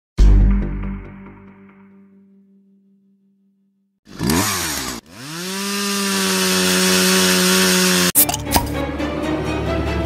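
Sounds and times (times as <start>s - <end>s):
two-stroke engine high whine: 4.1s - 8.2s.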